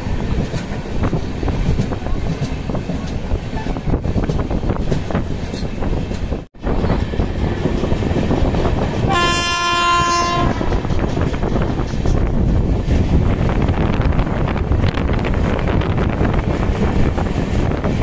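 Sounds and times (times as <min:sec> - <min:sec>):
train rumbling past: 0:00.0 - 0:18.0
locomotive horn blast: 0:09.1 - 0:10.8.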